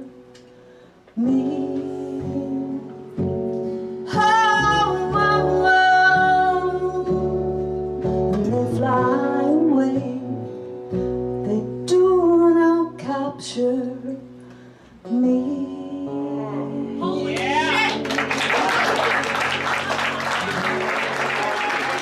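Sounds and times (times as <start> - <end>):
woman singing: 1.2 - 3.3, 4.0 - 7.6, 8.3 - 10.5, 11.4 - 14.4, 15.0 - 18.0
upright bass: 15.6 - 22.0.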